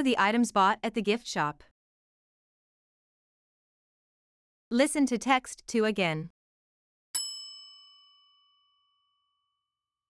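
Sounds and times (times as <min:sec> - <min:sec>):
bell-like chime ringing: 0:07.2 - 0:09.8.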